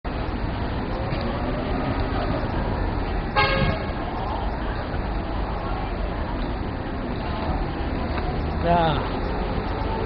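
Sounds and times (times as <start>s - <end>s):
hubbub of busy public building: 0.1s - 10.0s.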